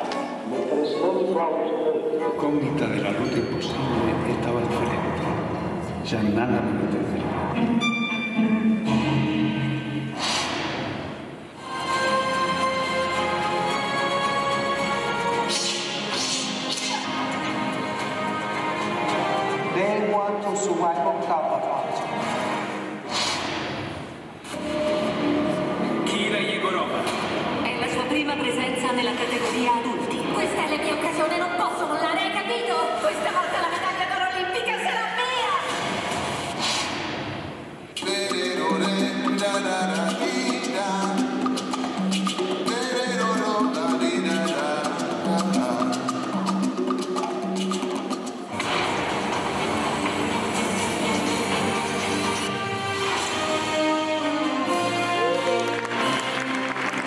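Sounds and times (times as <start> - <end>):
man's voice from film: 6.0 - 7.3, 19.7 - 22.3, 26.0 - 27.2
film music: 7.1 - 28.6, 38.0 - 57.0
burst of noise: 35.6 - 38.0.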